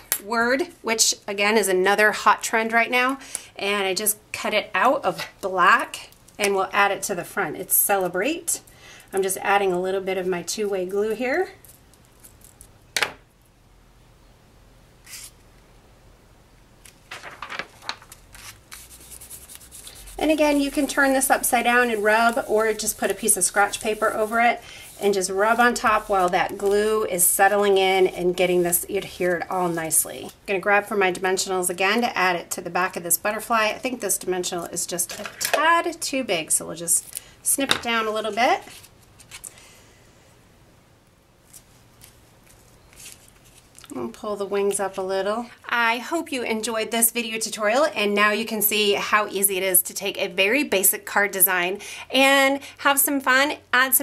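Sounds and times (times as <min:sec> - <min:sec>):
paper handling ticks: 0:16.8 - 0:24.4
paper rustling and sliding: 0:16.8 - 0:30.0, 0:41.4 - 0:43.8.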